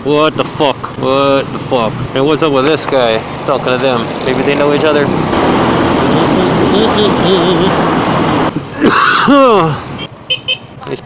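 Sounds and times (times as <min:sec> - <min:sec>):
wind rushing over microphone: 0:01.4 - 0:08.7.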